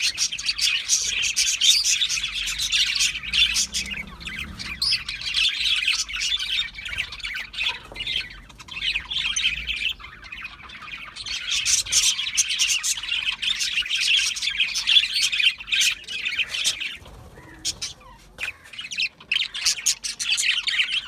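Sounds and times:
budgerigars chattering and squawking: 0.0 - 21.0.

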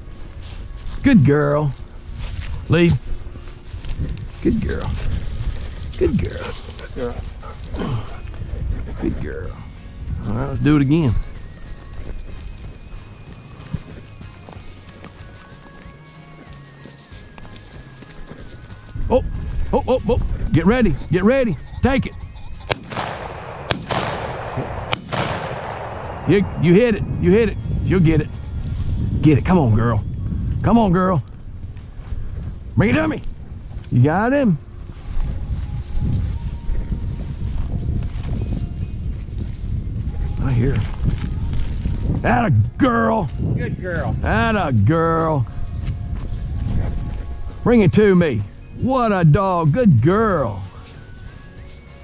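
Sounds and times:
wind buffeting microphone: 0.0 - 14.2, 18.8 - 50.7
footsteps through dry grass: 0.0 - 29.2, 29.9 - 52.0.

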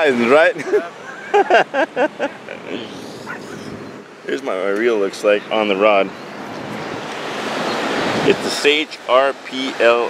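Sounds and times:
ocean wave breaking: 5.7 - 10.0.

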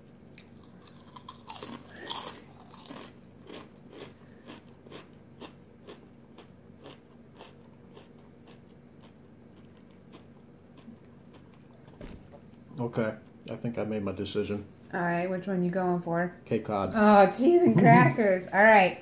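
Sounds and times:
person chewing crunchy chip: 0.2 - 12.0.

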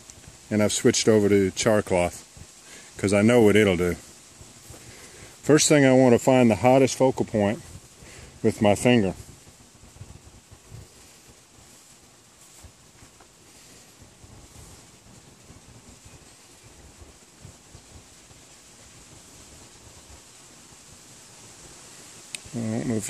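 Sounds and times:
faint outdoor hiss: 0.0 - 23.0
light rustles and soft bumps: 0.0 - 23.0.

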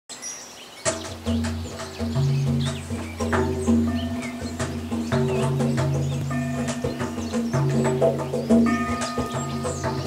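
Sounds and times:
magpies calling: 0.4 - 10.0
hand drumming on barrel drum: 0.8 - 10.0.

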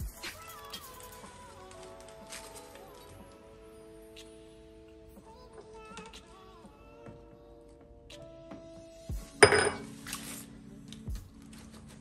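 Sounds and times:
object clinking on stone countertop: 9.4 - 9.9.

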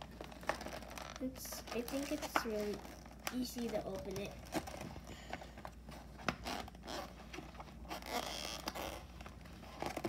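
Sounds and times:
plastic package rustling and scraping: 0.0 - 10.0.

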